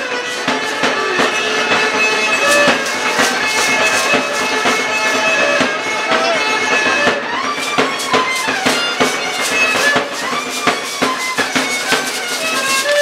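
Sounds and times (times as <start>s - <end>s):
high reedy melody: 0.0s - 13.0s
steady drum beat: 0.0s - 13.0s.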